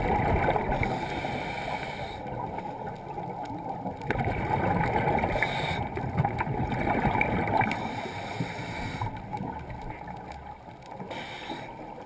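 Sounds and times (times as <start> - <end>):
muffled underwater rumble: 0.0 - 12.0.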